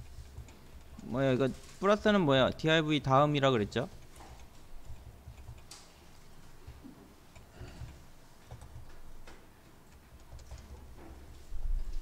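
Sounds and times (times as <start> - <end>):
computer keyboard and mouse clicks: 0.0 - 1.3, 3.6 - 11.5.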